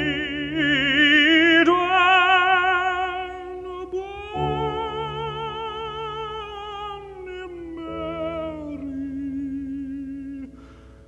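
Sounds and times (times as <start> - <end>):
tenor singing: 0.0 - 10.7
piano: 0.0 - 11.0.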